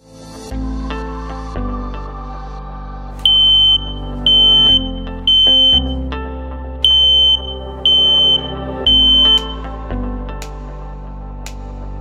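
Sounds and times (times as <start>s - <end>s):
background music: 0.0s - 12.0s
alarm beeping high-pitched: 3.3s - 5.9s, 6.9s - 9.6s.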